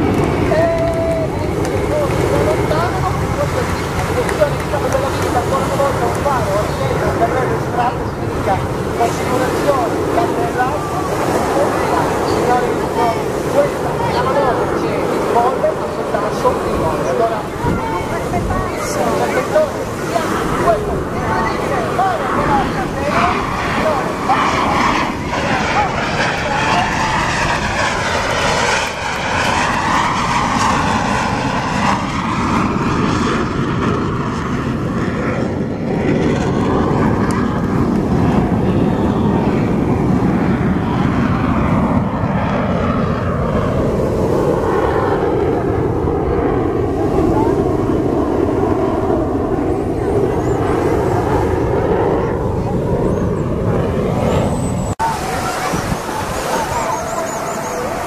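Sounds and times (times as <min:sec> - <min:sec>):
jet engines roaring: 0:00.0 - 0:58.0.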